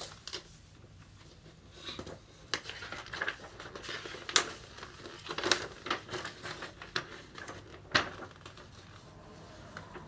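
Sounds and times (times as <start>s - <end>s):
paper rustling and crinkling: 0.0s - 10.0s
sharp paper crackles: 0.0s - 10.0s.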